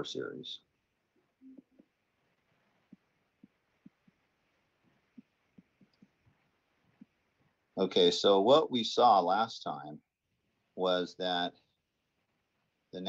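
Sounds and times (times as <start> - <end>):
stylus tapping on tablet screen: 2.6 - 7.2.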